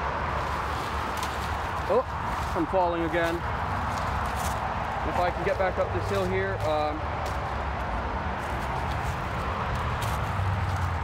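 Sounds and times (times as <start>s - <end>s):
rustling of brush and dry leaves: 0.0s - 11.0s.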